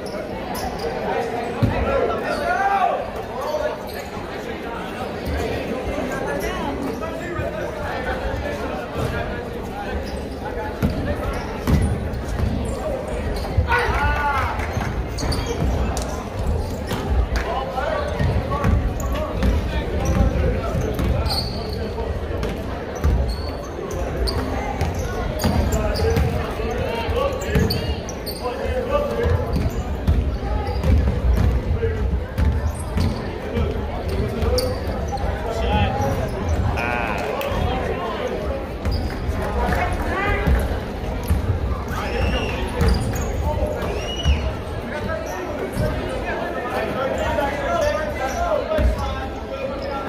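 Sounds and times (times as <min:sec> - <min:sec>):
spectators chattering: 0:00.0 - 0:50.0.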